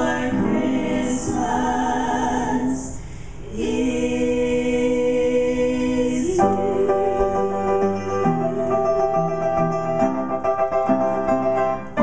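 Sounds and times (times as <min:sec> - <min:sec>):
women singing in harmony: 0:00.0 - 0:08.9.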